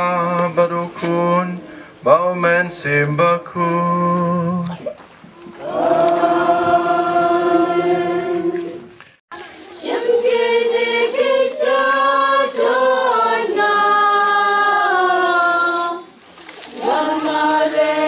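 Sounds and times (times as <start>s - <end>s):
choir singing a hymn: 5.4s - 18.0s.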